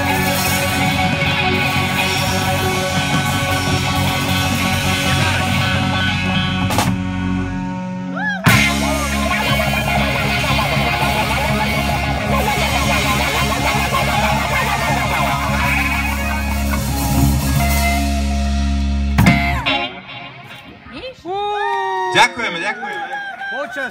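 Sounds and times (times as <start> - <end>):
live rock band playing: 0.0 - 21.3.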